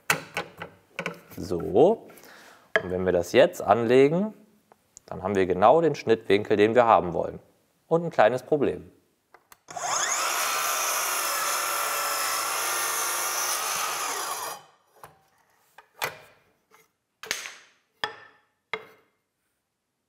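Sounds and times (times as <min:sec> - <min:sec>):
mitre saw cutting wood: 0:09.7 - 0:14.8.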